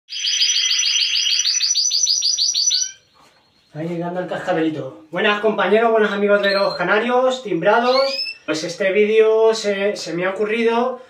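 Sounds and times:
canary singing rapid notes: 0.1 - 3.8, 6.0 - 8.7.

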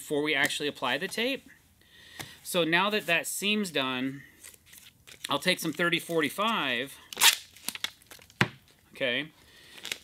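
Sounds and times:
tape tearing off roll: 7.2 - 8.0.

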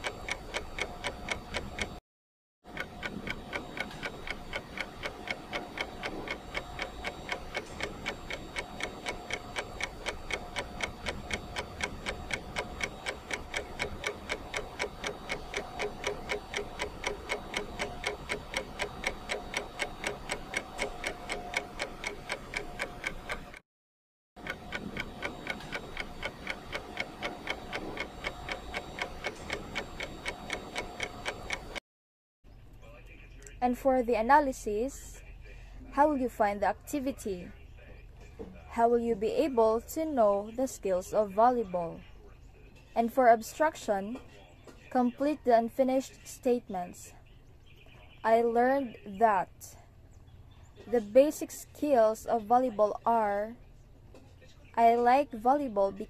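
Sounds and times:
fast clock ticking: 0.0 - 2.0, 2.7 - 23.6, 24.4 - 31.8.

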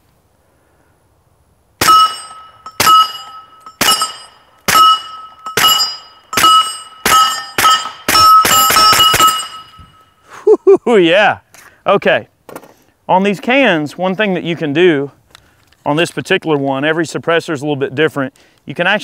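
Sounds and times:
steel target ringing: 1.8 - 10.2.

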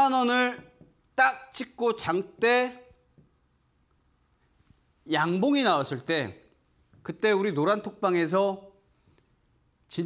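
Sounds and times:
pen scratching on board: 0.6 - 1.3, 2.8 - 4.6.

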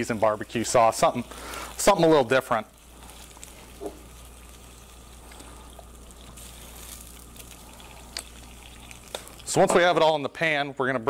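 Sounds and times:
sauce sizzling in a skillet: 0.0 - 9.7
low steady hum: 0.0 - 11.0.

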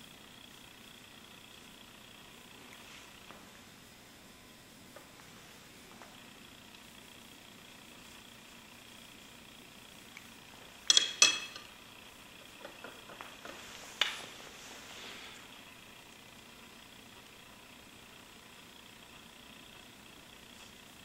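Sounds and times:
tool clinking against a dish: 10.9 - 11.7.

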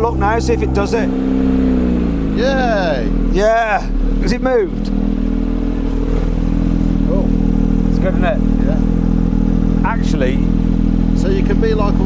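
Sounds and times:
car engine idling: 0.0 - 12.0.

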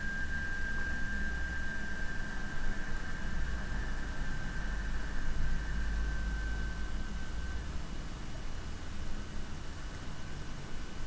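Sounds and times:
low hum: 0.0 - 8.1
thin high whine: 0.0 - 8.5.

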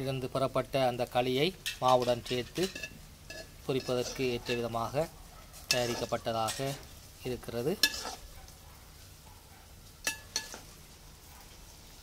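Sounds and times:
metal spoon stirring in metal bowl: 1.6 - 8.5, 10.0 - 10.8.

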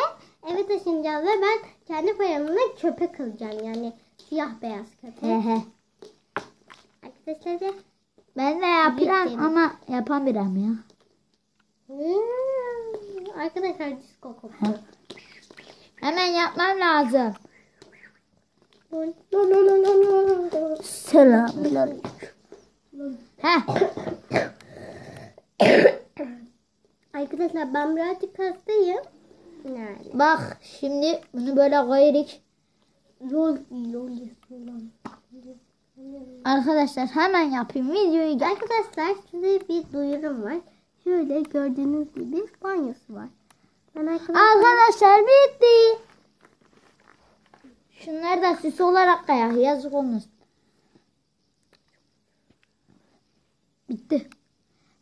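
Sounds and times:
person coughing: 23.7 - 26.4.

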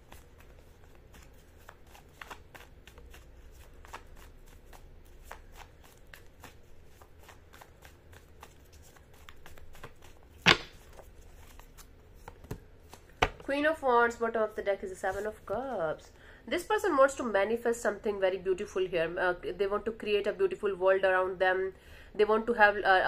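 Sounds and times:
tarot cards being shuffled: 0.0 - 13.5.

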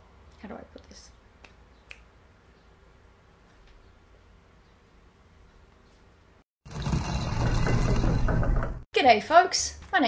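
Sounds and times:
grinding gears and ratchets: 6.6 - 8.9.

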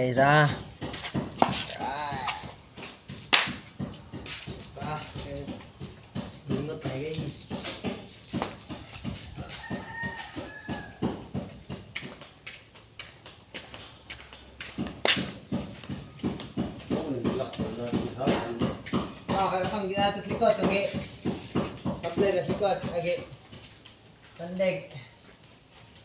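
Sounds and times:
voices: 1.5 - 2.9, 4.6 - 8.4.

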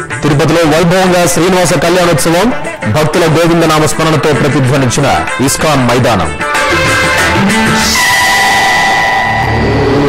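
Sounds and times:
music: 0.0 - 10.0
steady electronic tones: 6.2 - 10.0
rush of noise: 7.5 - 10.0.

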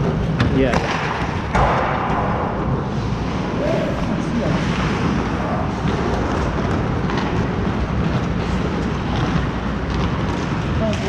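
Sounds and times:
skates rushing on ice: 0.0 - 11.0.

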